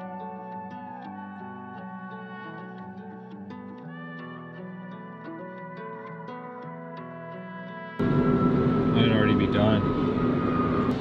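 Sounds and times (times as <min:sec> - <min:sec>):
background music held notes: 0:00.0 - 0:11.0
loud steady humming noise: 0:08.0 - 0:11.0.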